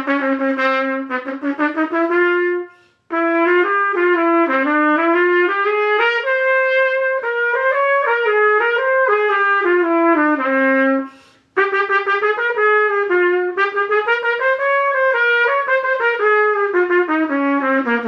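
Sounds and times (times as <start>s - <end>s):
trumpet melody: 0.0s - 18.0s.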